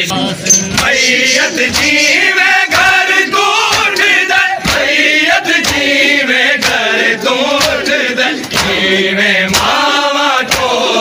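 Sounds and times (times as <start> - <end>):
men chanting together: 0.6 - 11.0
hands beating chest: 0.7 - 8.9, 9.5 - 10.8.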